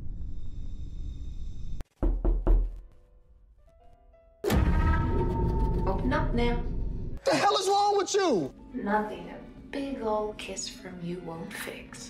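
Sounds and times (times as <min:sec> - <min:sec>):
music: 0:00.4 - 0:12.0.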